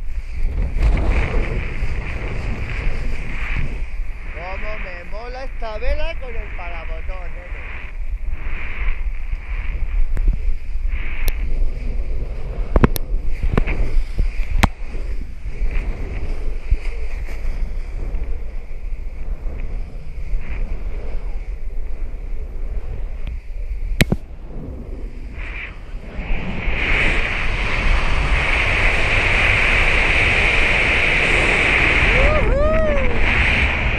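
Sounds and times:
wind buffeting microphone: 0.0 - 33.9.

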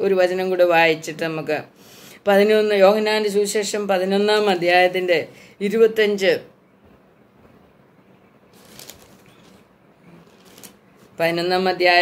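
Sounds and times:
book pages rustling: 8.5 - 11.3.

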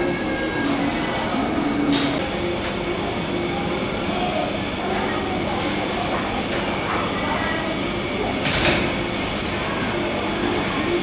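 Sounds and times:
indistinct voices of shoppers: 0.0 - 11.0.

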